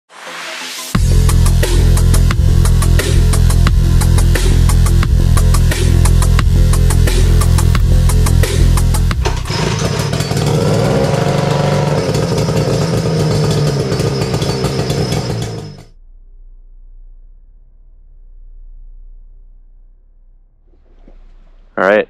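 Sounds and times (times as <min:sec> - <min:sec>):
electronic music with heavy beat: 0:00.2 - 0:09.4
outboard motor running: 0:01.0 - 0:15.9.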